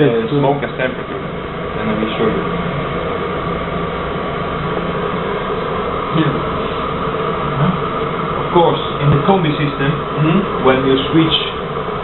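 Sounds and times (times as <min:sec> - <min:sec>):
boiler fan whirring: 0:00.0 - 0:12.0
steady hum: 0:00.0 - 0:12.0.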